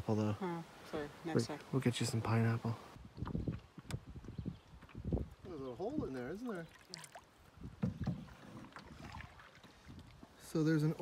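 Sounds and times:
water lapping against canoe hull: 3.0 - 11.0.

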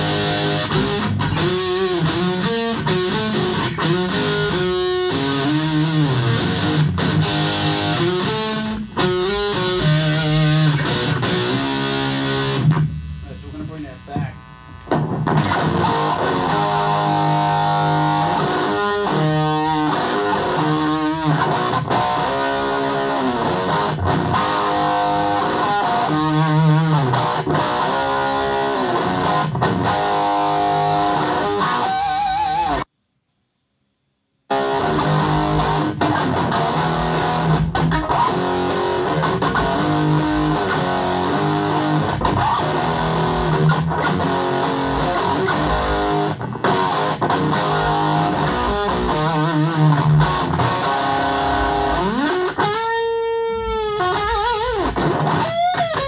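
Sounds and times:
electric guitar playing: 0.0 - 32.9, 34.5 - 56.0.

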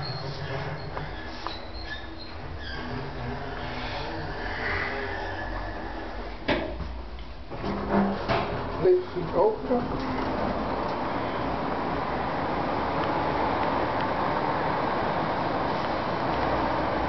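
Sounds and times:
lift humming: 7.4 - 17.0.

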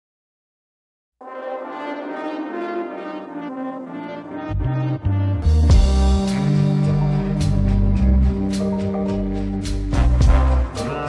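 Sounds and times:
brass instruments sustained tone: 1.2 - 11.0.

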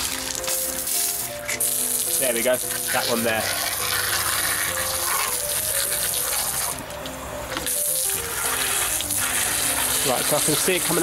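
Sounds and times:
water splattering on paving: 0.0 - 6.8, 7.6 - 11.0
hose water spraying: 0.0 - 6.9, 7.5 - 11.0.

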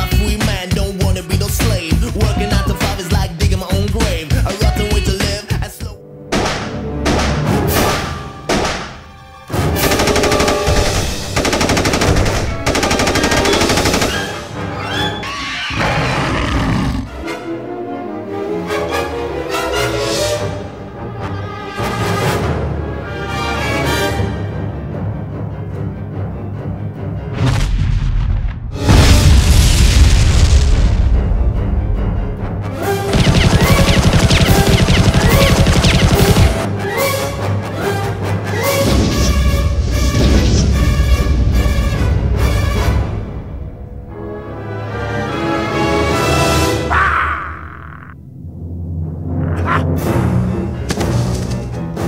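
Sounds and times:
music: 0.0 - 47.6, 48.2 - 52.0
orchestral film score: 0.0 - 52.0
rapid automatic gunfire: 9.8 - 14.5, 33.1 - 36.7.

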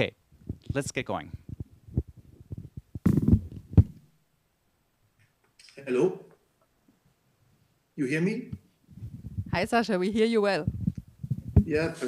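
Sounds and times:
microphone rustling bumps: 0.3 - 4.1, 8.5 - 12.0
microphone handling knocks: 1.4 - 4.0, 8.5 - 9.7, 10.6 - 11.9.

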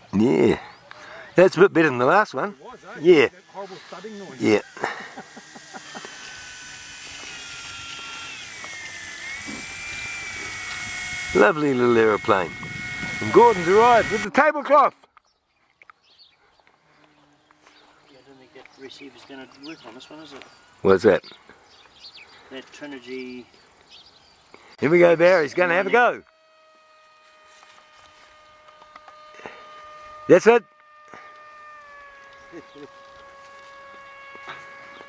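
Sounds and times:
electric model plane motor buzzing: 0.0 - 14.8, 16.6 - 35.0.

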